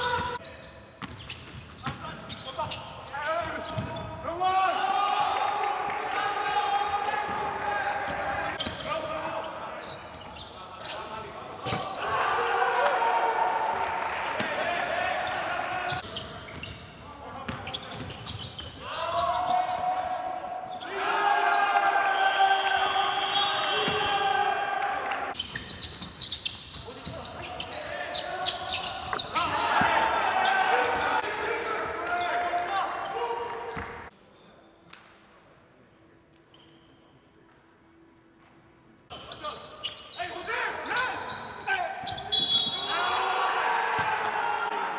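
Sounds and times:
sharp shoe squeaks: 0:00.0 - 0:04.1, 0:08.6 - 0:12.0, 0:15.9 - 0:20.0, 0:25.4 - 0:30.6, 0:36.5 - 0:37.2, 0:39.1 - 0:43.0
voices in echoing hall: 0:00.0 - 0:44.9
basketball bouncing on court: 0:03.4 - 0:04.2.

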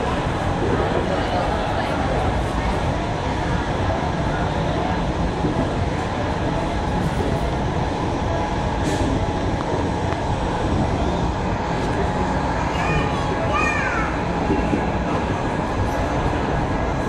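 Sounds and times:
train wheels rumbling on rail: 0:00.0 - 0:17.0.

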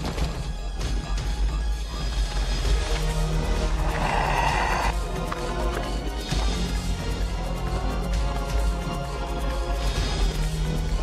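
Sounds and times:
film soundtrack music: 0:00.0 - 0:11.0.

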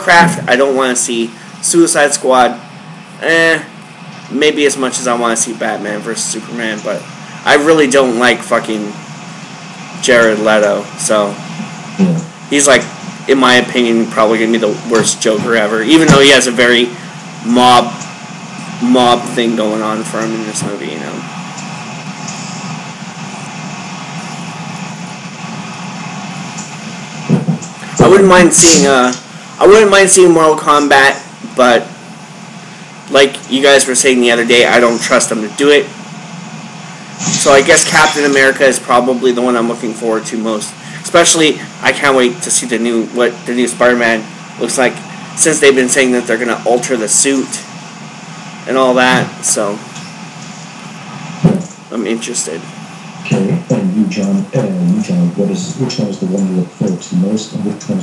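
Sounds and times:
short voice sound: 0:00.0 - 0:02.6, 0:27.3 - 0:31.9, 0:53.3 - 0:58.0
appliance rushing noise with hum: 0:00.0 - 0:55.8
open microphone background noise: 0:00.0 - 0:58.0.

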